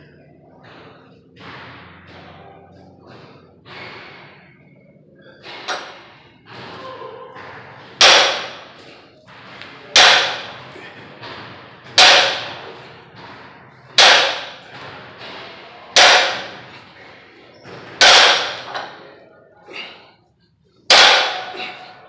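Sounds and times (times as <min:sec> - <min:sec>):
barbell thudding on rubber floor: 0:07.9 - 0:09.0, 0:09.7 - 0:10.7, 0:11.3 - 0:15.0, 0:16.0 - 0:16.8, 0:17.8 - 0:19.0, 0:20.9 - 0:21.9.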